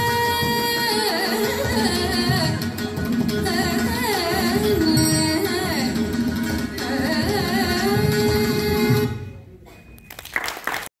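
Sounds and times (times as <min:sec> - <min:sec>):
audience applause: 0:10.1 - 0:10.9.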